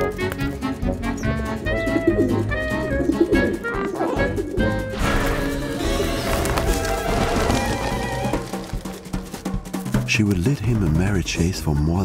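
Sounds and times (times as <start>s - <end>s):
pigeons cooing: 0.0s - 5.0s
background music: 0.0s - 12.0s.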